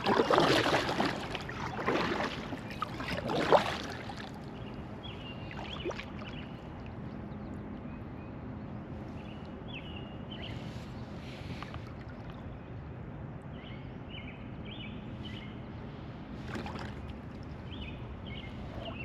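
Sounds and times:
paddle swishing through water: 0:00.0 - 0:04.6, 0:05.3 - 0:06.6, 0:10.5 - 0:12.4, 0:16.3 - 0:19.0
steady low hum: 0:00.0 - 0:19.0.

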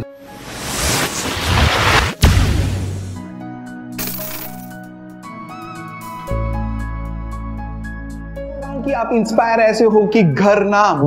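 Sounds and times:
hissing sound effect: 0:00.2 - 0:03.2.

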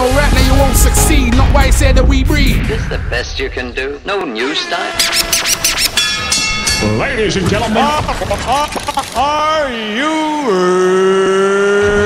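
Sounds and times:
turntable scratches: 0:04.8 - 0:06.0.

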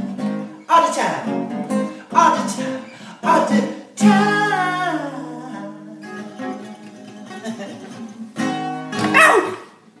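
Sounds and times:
acoustic guitar chord ringing: 0:00.0 - 0:09.3.

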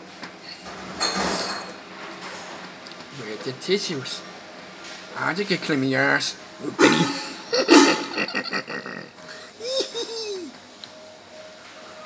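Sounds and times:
dishes and cutlery clattering: 0:01.0 - 0:01.8.

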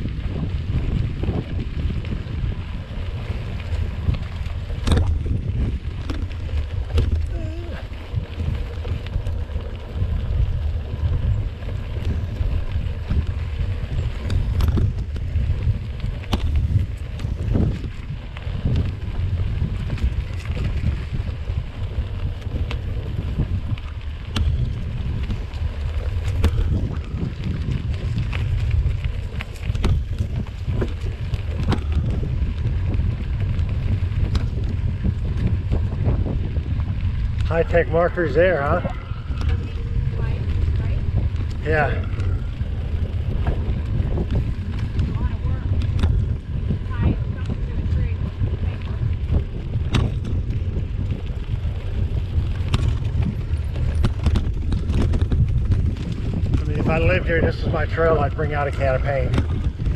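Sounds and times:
bike tyres rolling on dirt: 0:00.0 - 0:59.9
clicks and knocks over bumps: 0:00.0 - 0:59.9
wind buffeting microphone: 0:00.0 - 0:59.9.

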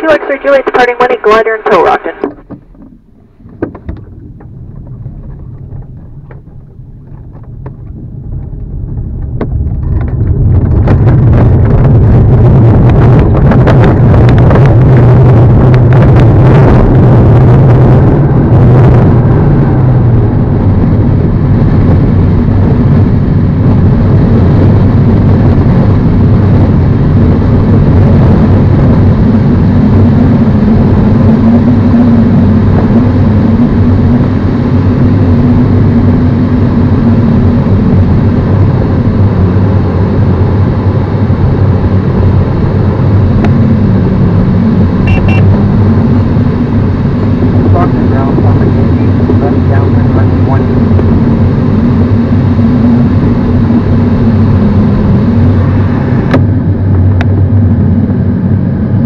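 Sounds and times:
propeller plane engine drone: 0:00.0 - 0:59.0.

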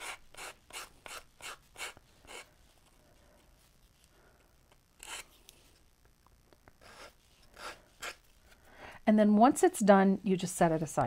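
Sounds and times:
emery board rasping on paper: 0:00.0 - 0:02.5, 0:06.8 - 0:08.3.

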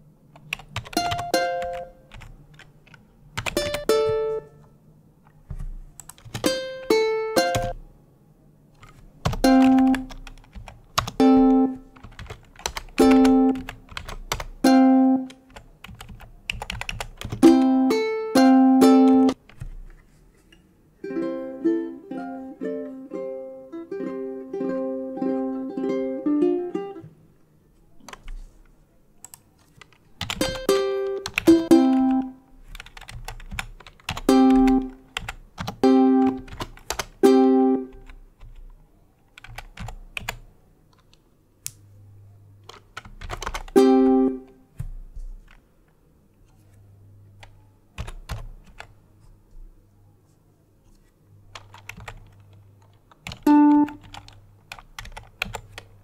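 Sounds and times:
ukulele notes: 0:01.0 - 0:02.1, 0:03.5 - 0:04.7, 0:06.4 - 0:07.8, 0:11.2 - 0:11.9, 0:13.0 - 0:13.6, 0:14.6 - 0:15.4, 0:17.4 - 0:19.4, 0:21.0 - 0:27.2, 0:30.4 - 0:32.4, 0:34.2 - 0:35.0, 0:35.8 - 0:36.5, 0:37.1 - 0:38.0, 0:43.7 - 0:44.7, 0:53.4 - 0:54.0.

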